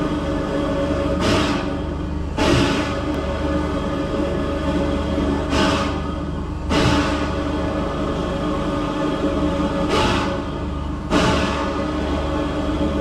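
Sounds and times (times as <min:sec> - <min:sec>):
eerie droning music: 0:00.0 - 0:13.0.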